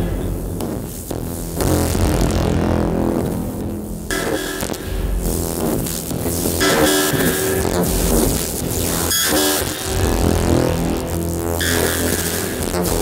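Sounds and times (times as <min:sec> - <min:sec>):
synthesized tones and drones: 0:00.0 - 0:13.0.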